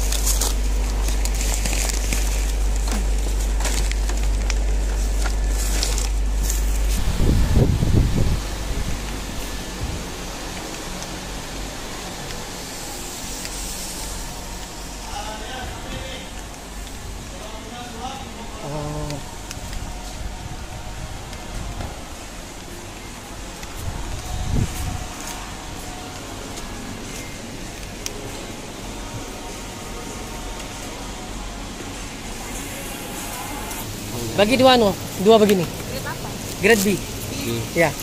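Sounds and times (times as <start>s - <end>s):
rice bag rustling: 0.0s - 7.5s
steady low rumble: 0.0s - 37.4s
loud low rumbling burst: 2.4s - 10.2s
faint voices: 14.1s - 38.0s.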